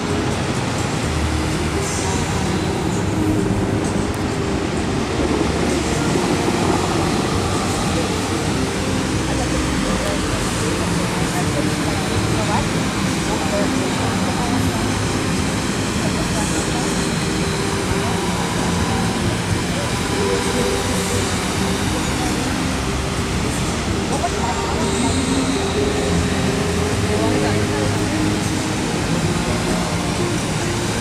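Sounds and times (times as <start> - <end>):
crowd voices: 0.0 - 31.0
fountain water rushing and splashing: 0.0 - 31.0.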